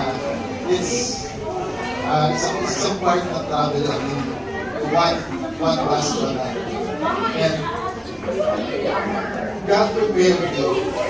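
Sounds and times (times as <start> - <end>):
man talking through a microphone: 0.0 - 7.8, 9.2 - 11.0
people chattering: 0.0 - 11.0.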